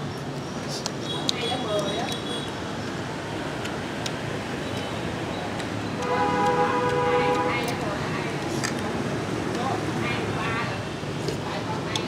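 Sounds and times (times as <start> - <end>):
street background noise: 0.0 - 12.0.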